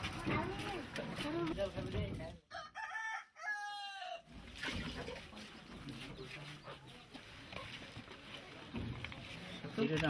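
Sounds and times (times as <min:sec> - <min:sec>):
people talking: 0:00.0 - 0:02.4
rooster crowing: 0:02.5 - 0:04.3.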